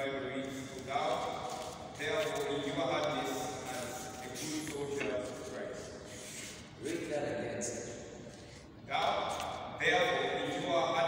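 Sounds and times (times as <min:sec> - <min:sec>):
man speaking into a microphone: 0:00.0 - 0:11.0.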